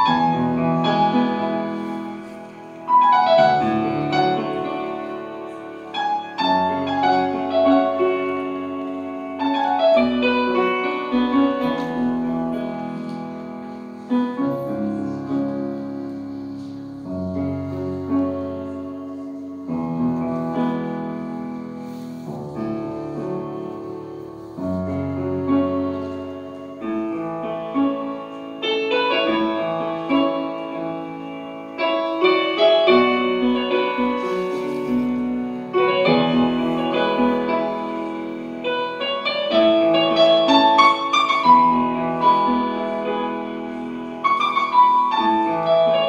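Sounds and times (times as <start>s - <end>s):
grand piano slow solo piece: 0.0s - 46.0s.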